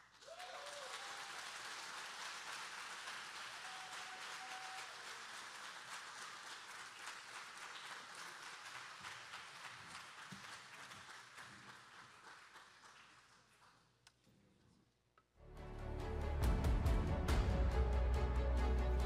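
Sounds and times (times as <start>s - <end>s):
congregation applauding: 0.0s - 14.0s
cheers and whoops: 0.2s - 1.8s, 3.4s - 5.2s.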